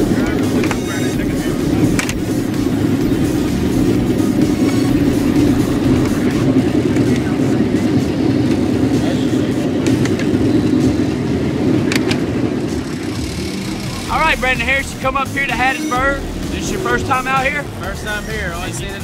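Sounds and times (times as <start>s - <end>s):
race car engines running: 0.0s - 19.0s.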